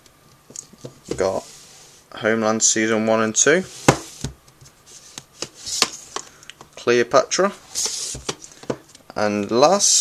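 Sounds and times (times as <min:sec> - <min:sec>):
plastic case sliding hiss: 0:04.9 - 0:06.2, 0:07.7 - 0:08.4.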